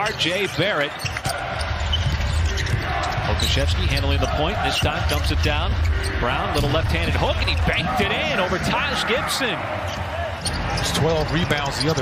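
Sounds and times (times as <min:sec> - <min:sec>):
low arena rumble: 0:01.7 - 0:11.9.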